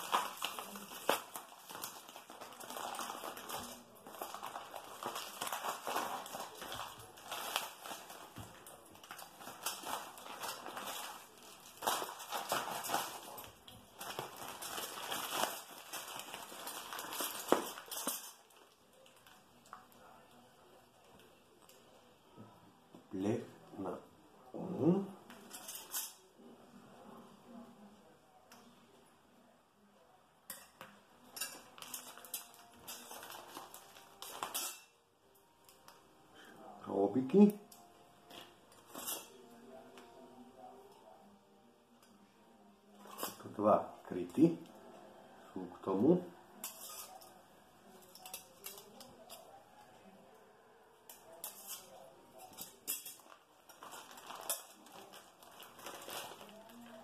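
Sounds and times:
plastic packaging rustling: 0.0s - 21.9s, 31.2s - 35.0s, 42.9s - 44.8s, 45.9s - 49.8s, 51.2s - 57.0s
plastic wrapping crinkling: 0.0s - 22.0s, 31.2s - 36.0s, 42.8s - 44.8s, 45.9s - 50.1s, 51.1s - 57.0s.

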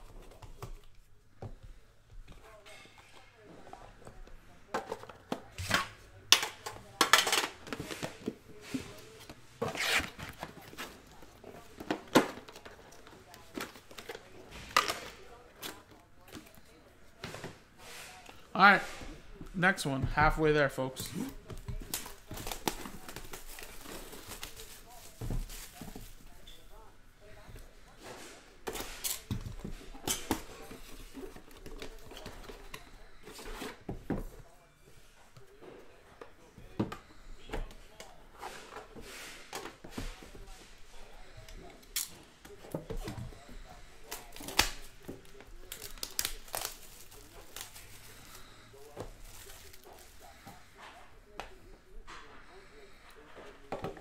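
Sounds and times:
plastic wrap crinkling and tearing: 44.2s - 50.3s.

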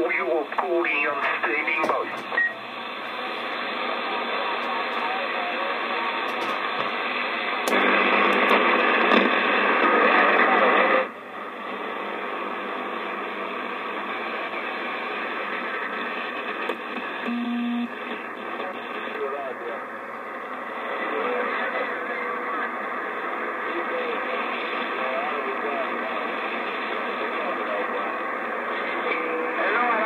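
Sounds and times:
faint garbled radio voices: 0.0s - 30.0s
radio static and hiss: 0.0s - 30.0s
low beep: 17.3s - 17.9s.

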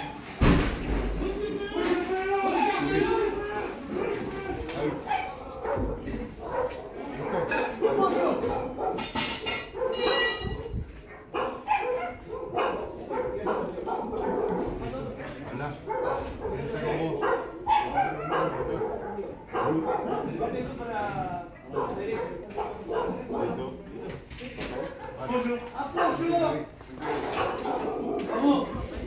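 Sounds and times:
men's voices: 0.8s - 8.8s, 12.2s - 29.0s
dog barking: 5.0s - 14.9s, 15.8s - 20.7s, 21.6s - 23.7s, 24.6s - 26.4s, 27.0s - 28.8s.

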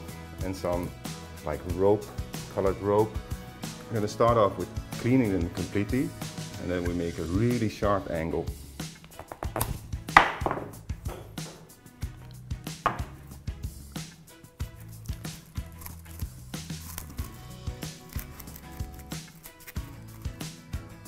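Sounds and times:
background music: 0.0s - 21.0s
knife scraping and cutting stem: 14.6s - 20.6s.

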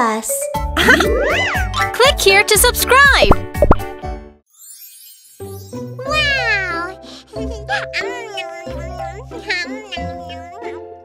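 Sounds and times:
light children's music: 0.0s - 11.0s
high-pitched cartoon voice: 6.0s - 10.9s.

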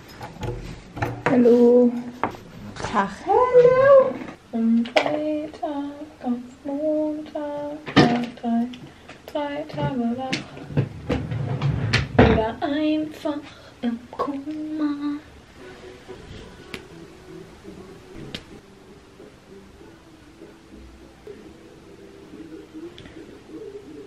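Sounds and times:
woman singing wordless tune: 1.2s - 2.3s, 3.0s - 10.8s, 12.2s - 18.6s.

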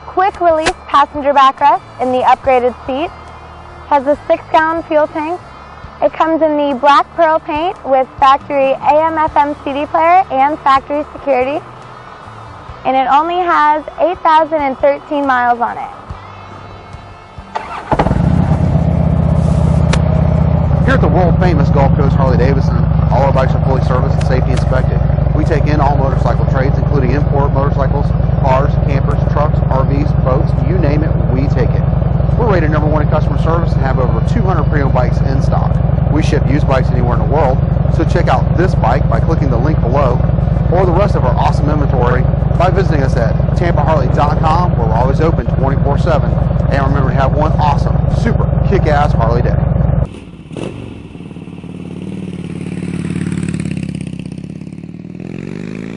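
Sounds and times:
motorcycle engine idling: 0.0s - 55.9s
woman speaking: 0.1s - 3.1s, 3.9s - 5.4s, 6.0s - 11.6s, 12.9s - 16.0s.

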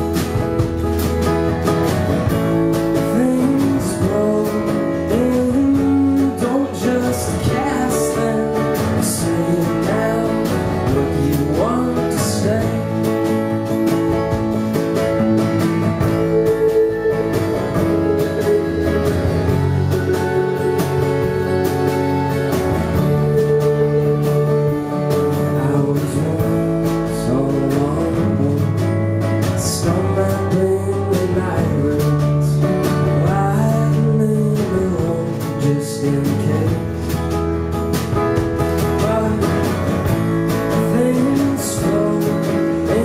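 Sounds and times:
strummed acoustic guitar: 0.0s - 43.0s
upright bass: 0.0s - 43.0s.

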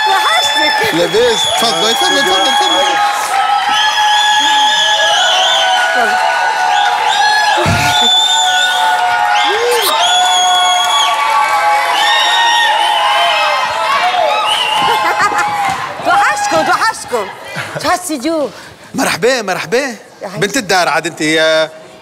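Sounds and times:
audience cheering and whooping: 0.0s - 17.0s.

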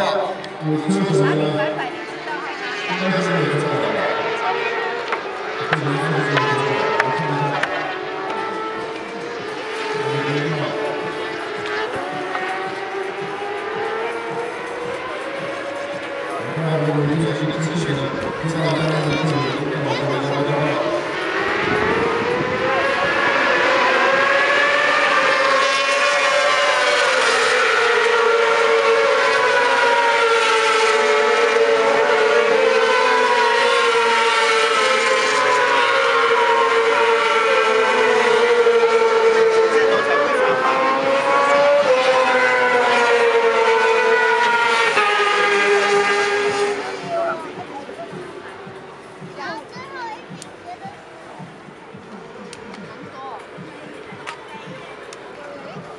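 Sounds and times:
racing motorcycles at high revs: 0.0s - 55.9s.

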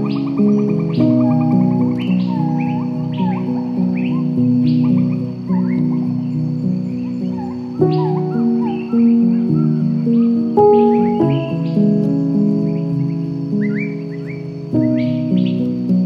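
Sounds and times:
birds chirping: 0.0s - 16.0s
soft piano chords: 0.0s - 16.0s.

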